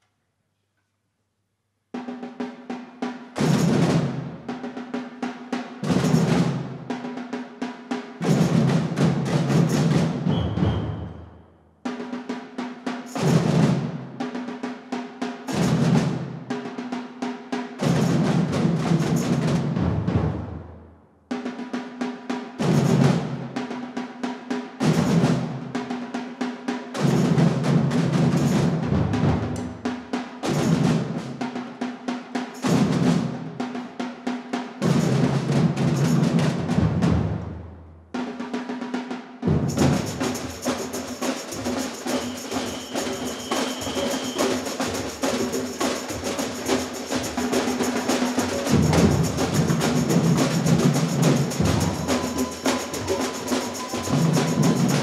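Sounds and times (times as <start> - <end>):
samba drum band playing: 2.0 - 55.0.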